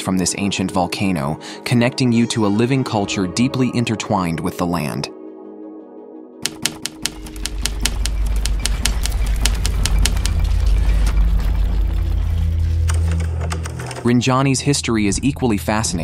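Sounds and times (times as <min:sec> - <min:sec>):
typewriter keys clacking: 0:06.4 - 0:11.6, 0:12.6 - 0:14.2
low music drone: 0:07.1 - 0:16.0.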